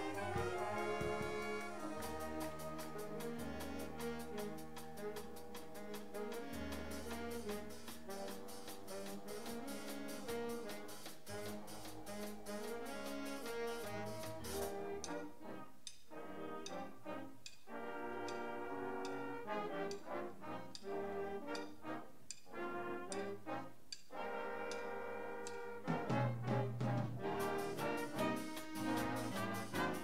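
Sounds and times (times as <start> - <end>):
ticking cymbal strokes: 0.0 - 16.8, 27.2 - 30.0
brass band playing: 0.0 - 30.0.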